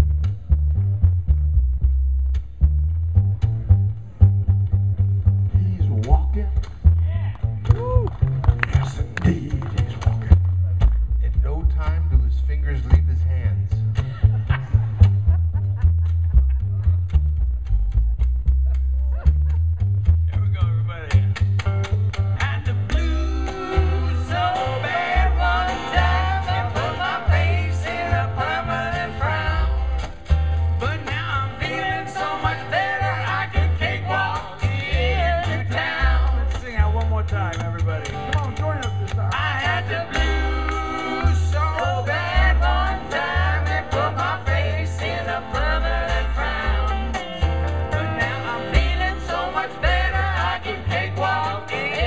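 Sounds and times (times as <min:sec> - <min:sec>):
jug band wavering melody: 0:00.0 - 0:52.0
upright bass plucking: 0:00.0 - 0:52.0
strummed acoustic guitar: 0:21.0 - 0:52.0.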